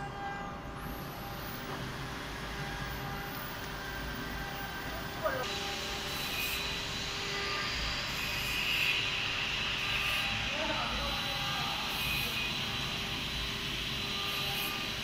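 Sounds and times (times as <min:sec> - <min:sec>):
cnc router humming: 0:00.0 - 0:15.0.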